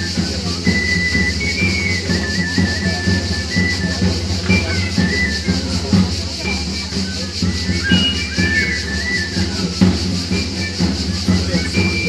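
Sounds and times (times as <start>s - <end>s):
steady drum beat: 0.0s - 12.0s.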